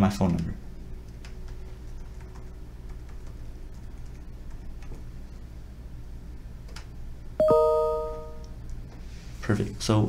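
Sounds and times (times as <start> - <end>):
two-note notification chime: 7.4 - 8.5.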